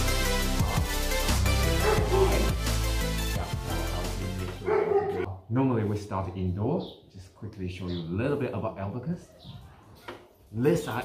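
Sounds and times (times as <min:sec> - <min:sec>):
background music: 0:00.0 - 0:05.3
dog barking: 0:01.6 - 0:02.6, 0:03.3 - 0:05.4.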